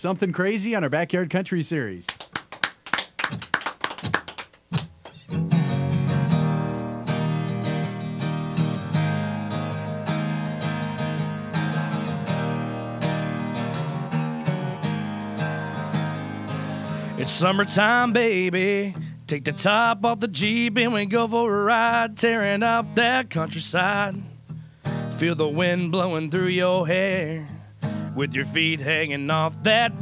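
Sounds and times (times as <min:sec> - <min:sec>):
acoustic guitar strumming: 0:04.7 - 0:30.0.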